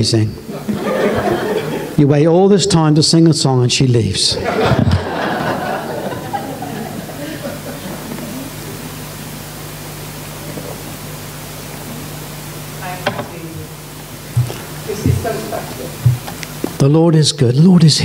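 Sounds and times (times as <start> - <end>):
low steady hum: 0.0 - 18.0
audience laughter: 0.5 - 2.0, 4.4 - 9.0.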